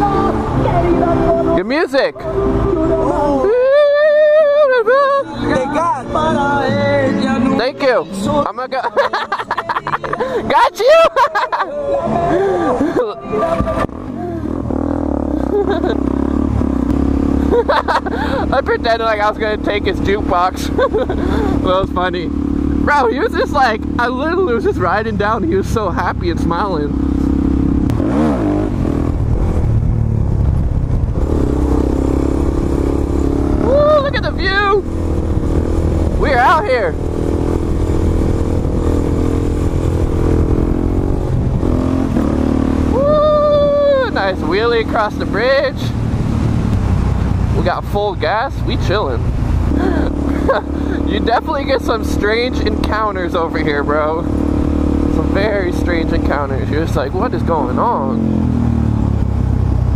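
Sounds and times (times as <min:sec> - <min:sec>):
motorcycle engine pulling away: 0:13.8 - 0:59.9.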